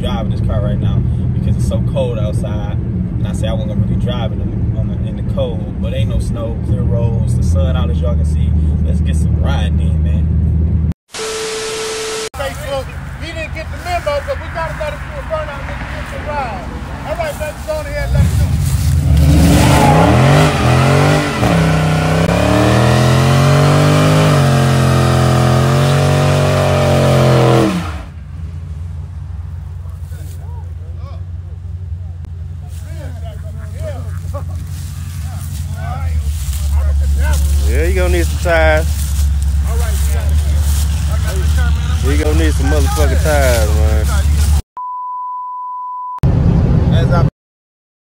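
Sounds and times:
car engine deep rumble: 0.0s - 11.0s, 12.4s - 44.6s, 46.2s - 47.3s
car engine revving hard: 18.2s - 28.2s, 37.4s - 44.6s.

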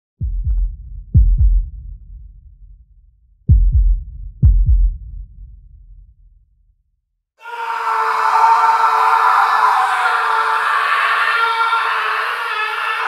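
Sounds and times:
heartbeat thumps: 0.2s - 2.2s, 3.5s - 5.4s.

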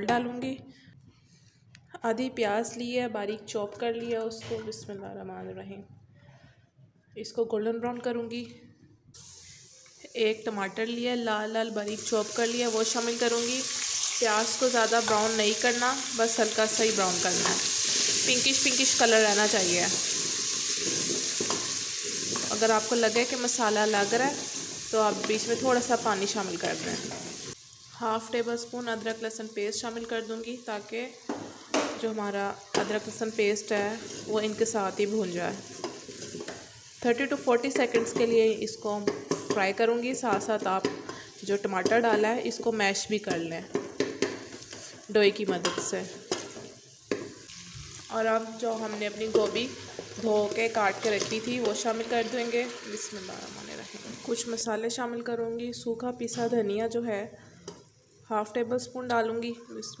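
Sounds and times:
vegetables sizzling in hot oil: 9.2s - 55.0s
wooden spoon stirring: 20.0s - 22.7s, 34.0s - 34.5s, 35.6s - 36.7s
ladle stirring and mashing: 35.6s - 36.7s.

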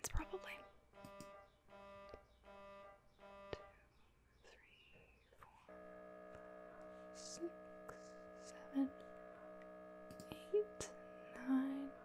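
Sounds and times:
mri scanner buzzing: 1.0s - 3.7s, 5.7s - 12.0s.

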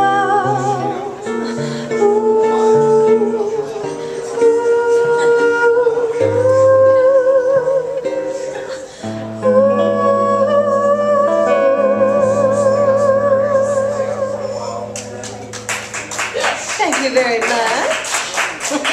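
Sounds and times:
woman singing jazz with vibrato: 0.0s - 14.9s
guitar chords: 0.0s - 18.0s.

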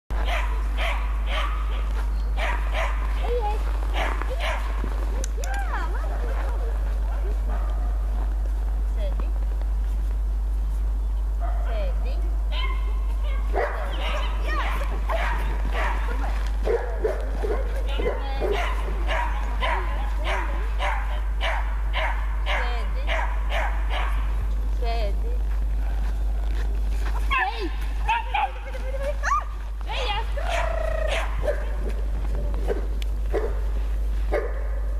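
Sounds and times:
steady low rumble: 0.1s - 34.9s
puppy barking and yipping: 0.2s - 4.8s, 12.5s - 24.3s, 28.1s - 31.7s.

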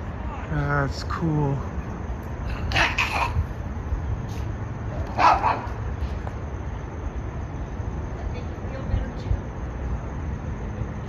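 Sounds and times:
dog barking: 5.1s - 5.8s.

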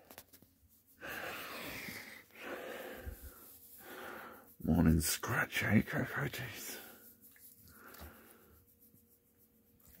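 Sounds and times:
hand rubbing dog fur: 0.0s - 10.0s.

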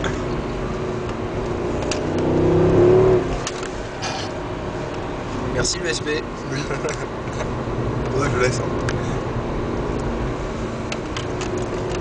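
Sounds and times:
car engine accelerating: 0.0s - 12.0s
road and tyre noise: 0.0s - 12.0s.

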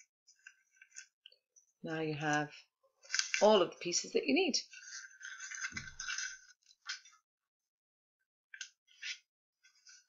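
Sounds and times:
paper rustling and crinkling: 4.8s - 7.2s.

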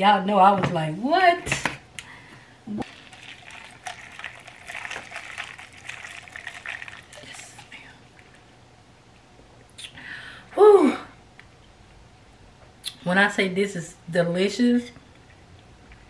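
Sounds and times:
liquid splashing in glass jar: 2.8s - 8.4s.

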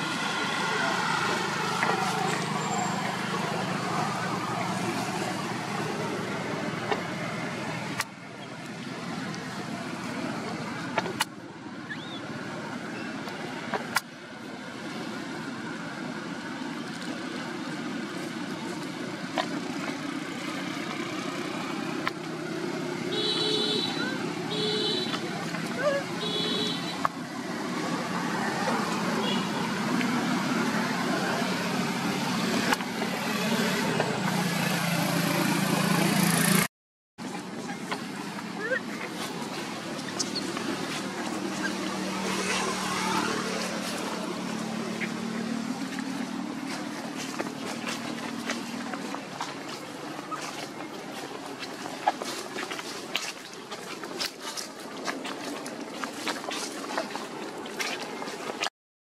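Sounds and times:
road traffic: 0.0s - 58.7s
car horn toots: 23.1s - 25.2s, 26.2s - 27.0s.

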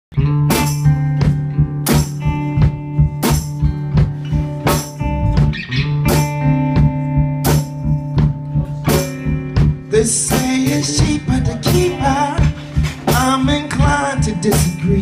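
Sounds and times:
bass guitar: 0.1s - 15.0s
electric guitar: 0.1s - 15.0s
drum kit with cymbal hits: 0.2s - 15.0s.

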